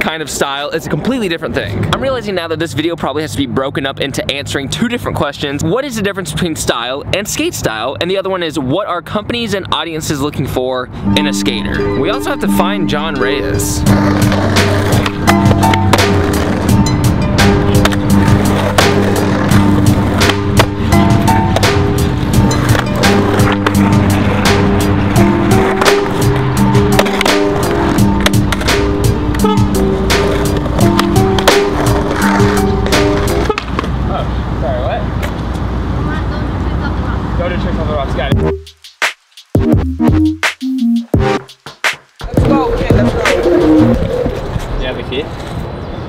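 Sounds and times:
background music: 0:11.0 - 0:33.6, 0:38.3 - 0:38.9, 0:39.5 - 0:44.3
skateboard rolling on concrete: 0:11.2 - 0:38.3, 0:41.6 - 0:46.0
skateboard pops and landings: 0:20.0 - 0:20.8.

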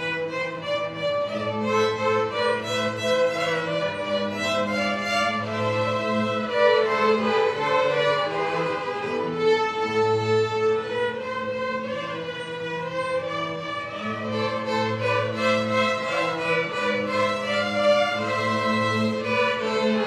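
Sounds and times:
string orchestra playing: 0:00.0 - 0:20.0.

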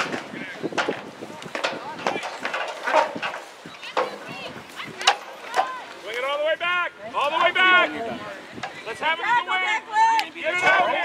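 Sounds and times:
shouts and chatter: 0:03.0 - 0:11.0.

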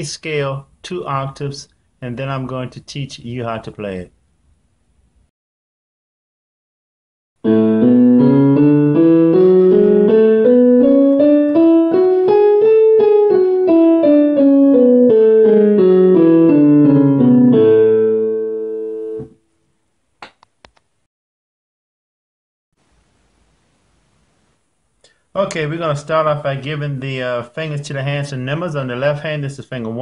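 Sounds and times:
digital piano playing a scale: 0:07.4 - 0:19.4.

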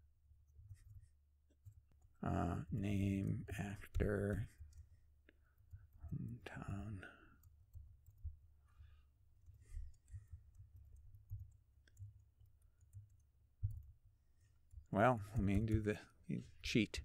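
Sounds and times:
keyboard keys typing: 0:06.7 - 0:08.5, 0:09.4 - 0:16.1.

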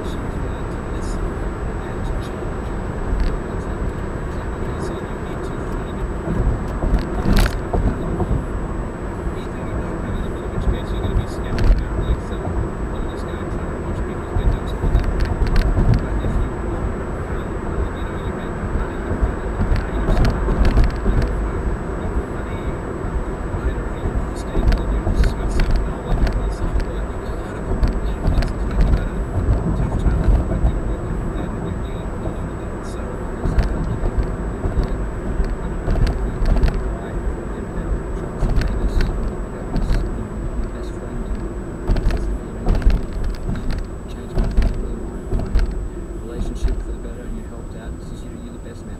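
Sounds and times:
engine rumble: 0:00.0 - 0:48.9
tyres on asphalt: 0:00.0 - 0:48.9.

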